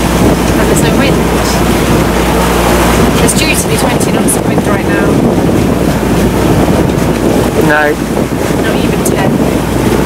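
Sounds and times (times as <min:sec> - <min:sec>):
choppy sea against hull: 0:00.0 - 0:10.0
wind buffeting microphone: 0:00.0 - 0:10.0.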